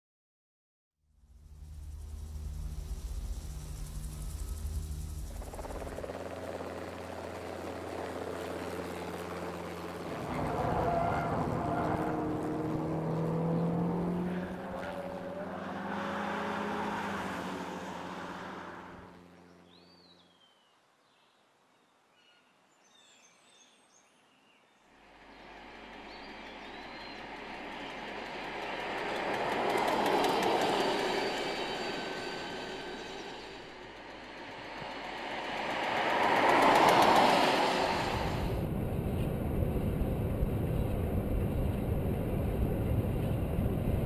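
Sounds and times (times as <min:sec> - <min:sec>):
tyre and road noise: 0:08.9 - 0:19.5, 0:25.2 - 0:44.0
wind noise: 0:34.5 - 0:44.0.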